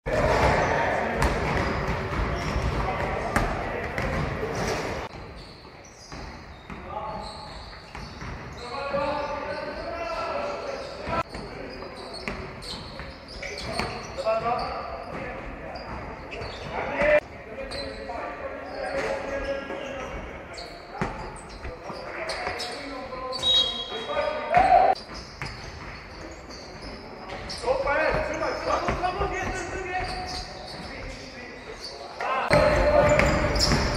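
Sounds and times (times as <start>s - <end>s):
players shouting: 32.2s - 33.9s
basketball bouncing on wooden floor: 32.5s - 33.9s.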